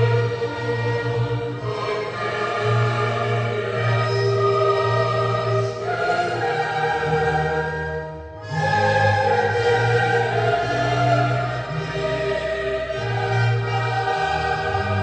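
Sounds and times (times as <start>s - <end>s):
choir singing held notes: 0.0s - 15.0s
low instrumental accompaniment: 0.0s - 15.0s.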